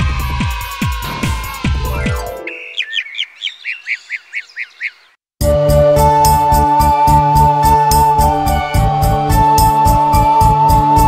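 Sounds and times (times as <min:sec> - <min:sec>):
keyboard music: 0:01.8 - 0:02.8, 0:05.4 - 0:11.0
cartoon bird chirps: 0:01.8 - 0:05.0.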